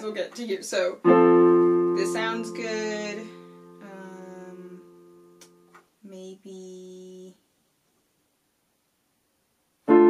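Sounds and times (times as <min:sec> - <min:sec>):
electronic keyboard piano chords: 0:01.0 - 0:04.0.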